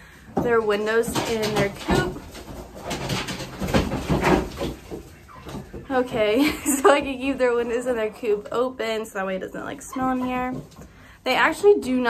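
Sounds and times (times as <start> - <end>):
chickens clucking: 1.5 - 8.4.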